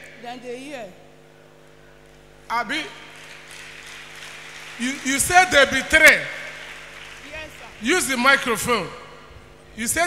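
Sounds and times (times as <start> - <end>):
low even hum: 0.0 - 10.0
man talking: 4.8 - 6.4.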